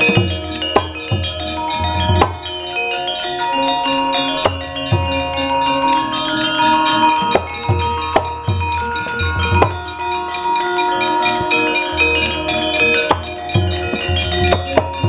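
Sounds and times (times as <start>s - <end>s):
metallophones ringing: 0.0s - 15.0s.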